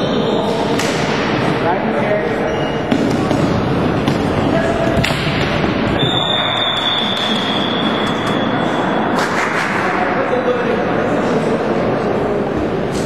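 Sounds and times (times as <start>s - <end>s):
clatter of floorball game: 2.9s - 8.4s, 9.1s - 10.1s.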